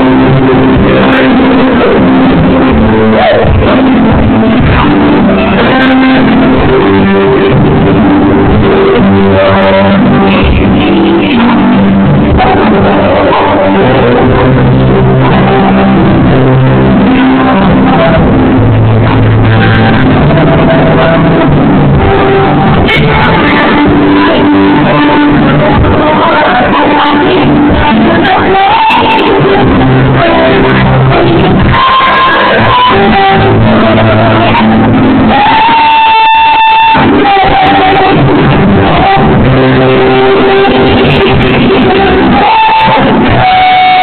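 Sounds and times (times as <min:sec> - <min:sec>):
electric guitar chords: 0:00.0 - 0:44.0
live band playing: 0:00.0 - 0:44.0.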